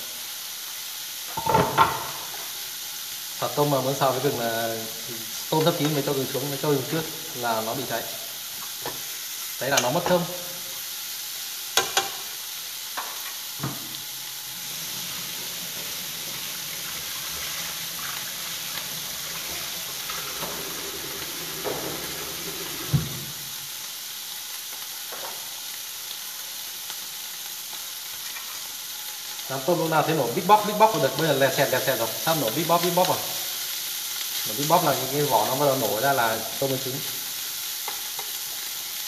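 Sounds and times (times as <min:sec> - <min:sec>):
shrimp sizzling in a pan: 0:00.0 - 0:39.0.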